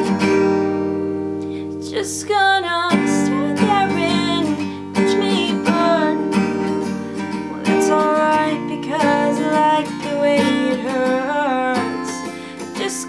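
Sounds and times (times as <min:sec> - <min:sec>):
acoustic guitar strummed: 0:00.0 - 0:13.0
young woman singing: 0:01.6 - 0:13.0.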